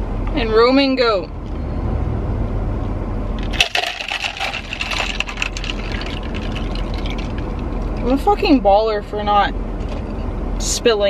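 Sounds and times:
ice clattering against plastic cup: 3.4s - 8.2s
liquid pouring: 3.4s - 8.2s.

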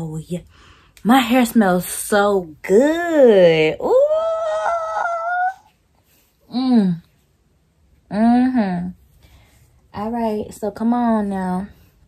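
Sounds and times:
woman exclaiming ooh: 3.8s - 5.7s.

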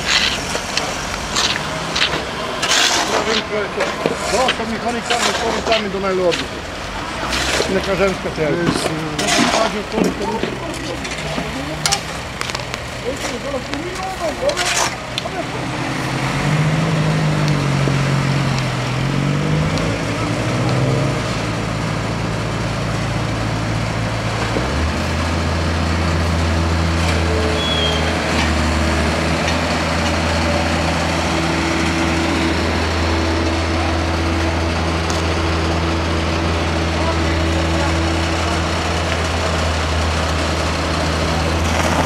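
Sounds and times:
diesel engine running: 0.0s - 42.0s.

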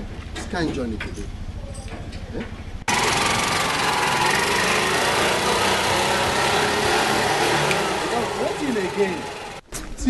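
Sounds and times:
auto-rickshaw engine running: 0.4s - 9.7s.

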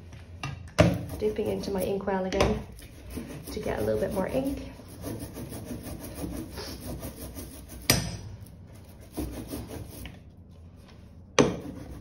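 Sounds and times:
ink roller rolling through ink: 1.0s - 7.9s.

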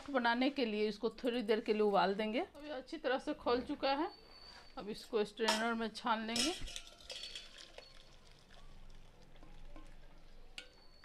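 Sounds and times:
metal clinks: 6.4s - 8.2s.

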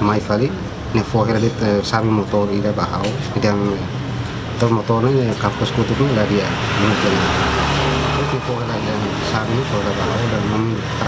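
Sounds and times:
road vehicle passing: 0.0s - 11.0s
man speaking: 4.6s - 11.0s.

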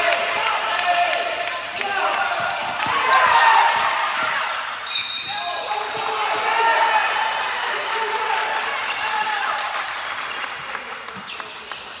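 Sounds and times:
spectators clapping: 5.6s - 12.0s.

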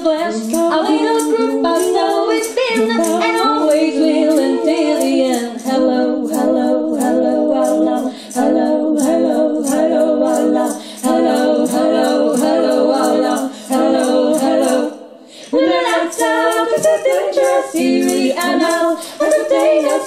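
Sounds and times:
women singing in harmony: 0.0s - 20.0s.

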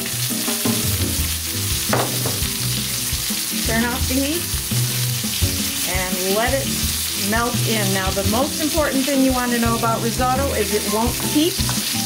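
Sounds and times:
risotto sizzling in a pan: 0.0s - 12.0s
sharp knock: 1.9s - 2.6s.

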